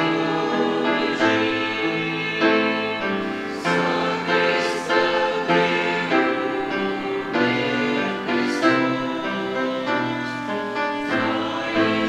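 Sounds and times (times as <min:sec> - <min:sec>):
choir singing a hymn: 0:00.0 - 0:12.0
instrumental accompaniment: 0:00.0 - 0:12.0.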